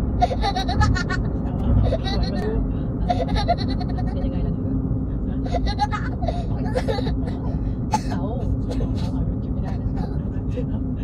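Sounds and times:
car interior rumble: 0.0s - 11.0s
person laughing hard: 0.2s - 2.4s.

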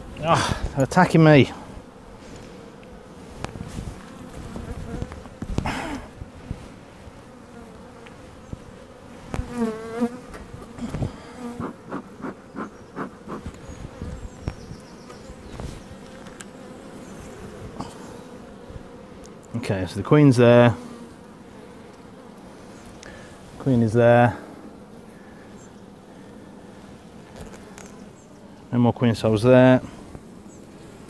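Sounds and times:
bees buzzing: 0.0s - 31.0s
bees flying past: 0.0s - 31.0s.

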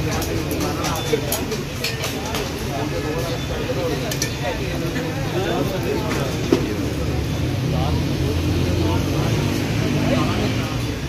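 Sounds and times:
traffic rumble: 0.0s - 11.0s
voices chattering: 0.0s - 11.0s.

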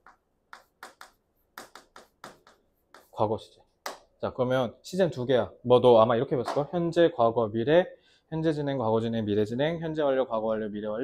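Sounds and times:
chalk on a chalkboard: 0.0s - 3.3s.

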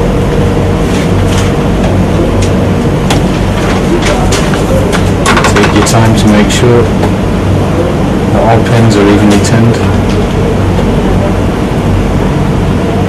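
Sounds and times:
loud low hum: 0.0s - 13.0s.

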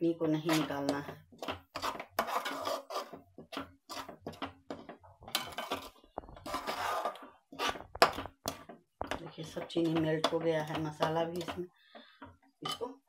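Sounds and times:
metal spoon scraping a pan: 0.2s - 13.0s.

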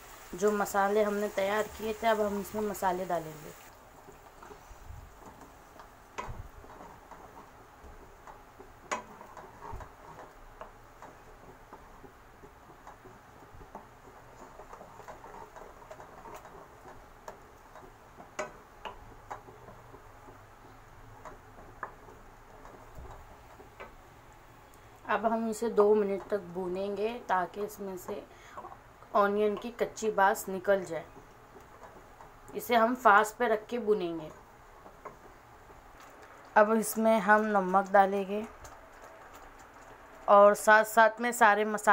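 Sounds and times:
paste sizzling in a pan: 0.0s - 20.4s
wooden spoon scraping a pan: 4.0s - 24.2s, 25.2s - 40.7s.

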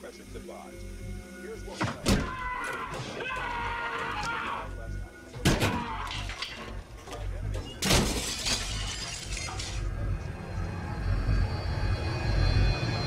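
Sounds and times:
low dark music score: 0.0s - 13.0s
glass shards falling: 6.1s - 6.8s, 7.8s - 9.8s
mirror glass smashing: 7.8s - 9.8s.

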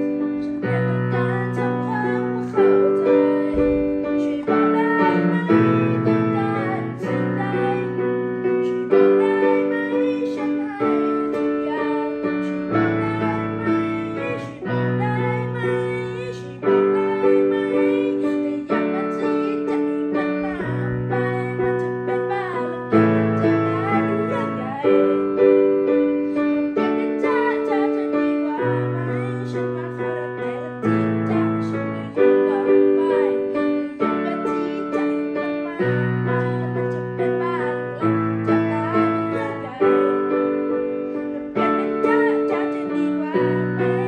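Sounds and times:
child singing: 0.0s - 44.0s
digital piano chords: 0.0s - 44.0s.

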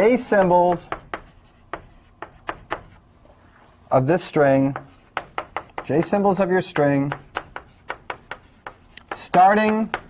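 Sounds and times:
chalk tapping on blackboard: 0.2s - 3.0s, 4.6s - 10.0s.

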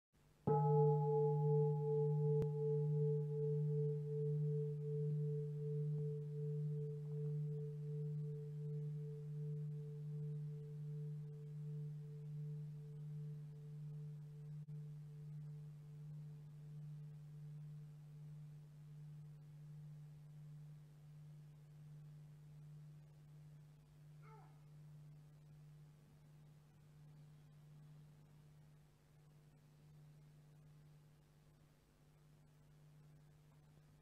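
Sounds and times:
bowl bell ringing: 0.5s - 23.6s.

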